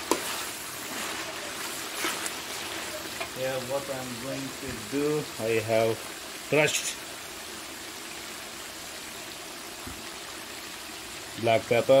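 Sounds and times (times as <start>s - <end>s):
food hissing in a wok: 0.0s - 11.5s.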